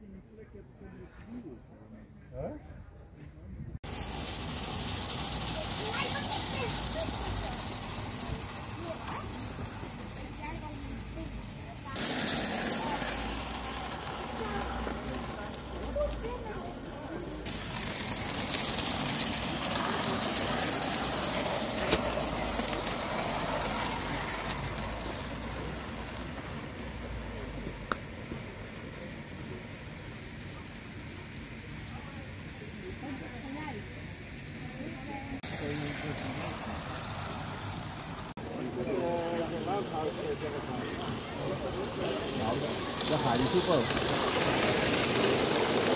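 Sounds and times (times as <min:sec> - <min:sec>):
model steam train running: 0:03.8 - 0:45.9.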